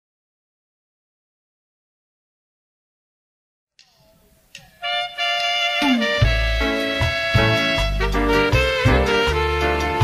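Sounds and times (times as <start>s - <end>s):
wind instruments holding a chord: 4.8s - 10.0s.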